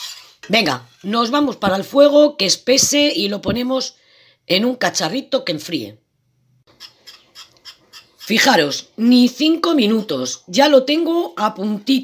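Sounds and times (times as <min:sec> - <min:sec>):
whisk scraping a saucepan: 0:00.0 - 0:01.8, 0:06.7 - 0:10.4.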